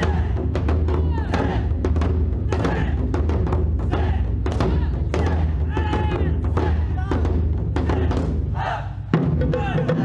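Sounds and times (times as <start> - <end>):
taiko drums playing: 0.0 - 10.0.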